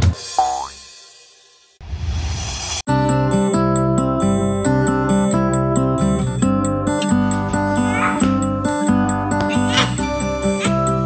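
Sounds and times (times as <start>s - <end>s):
whoosh: 1.8s - 2.9s.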